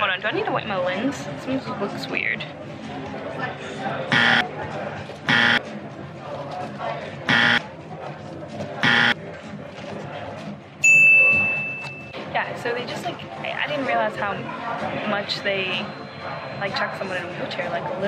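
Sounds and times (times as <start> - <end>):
harsh electronic buzzes: 4.1 - 4.4, 5.3 - 5.6, 7.3 - 7.6, 8.8 - 9.2.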